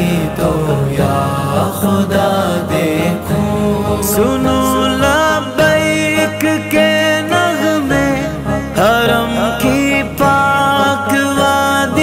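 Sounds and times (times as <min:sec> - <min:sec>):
men singing chant-like: 0:00.0 - 0:12.0.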